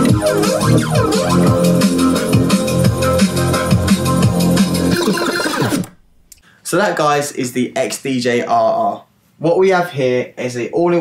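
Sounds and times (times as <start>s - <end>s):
electronic dance music: 0.0s - 6.0s.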